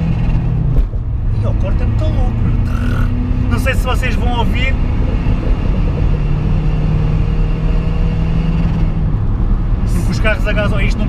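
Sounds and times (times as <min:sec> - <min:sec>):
diesel engine at high revs: 0:00.0 - 0:11.0.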